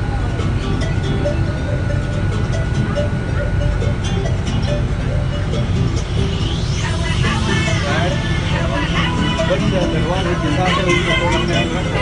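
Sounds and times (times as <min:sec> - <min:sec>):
boat engine rumble: 0:00.0 - 0:12.0
voices talking: 0:06.6 - 0:12.0.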